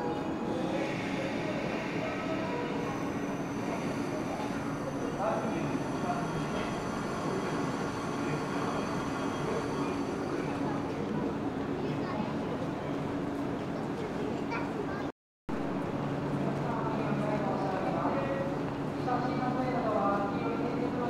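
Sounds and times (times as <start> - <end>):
crowd chattering: 0.0 - 15.1
train rolling into station: 0.0 - 21.0.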